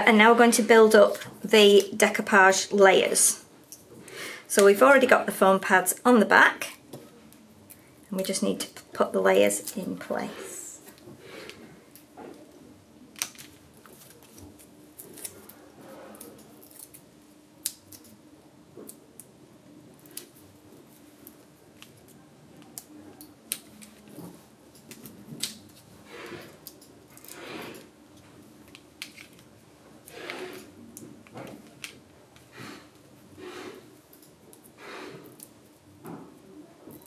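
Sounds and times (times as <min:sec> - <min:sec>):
paper clicks and rustles: 0:13.2 - 0:17.0.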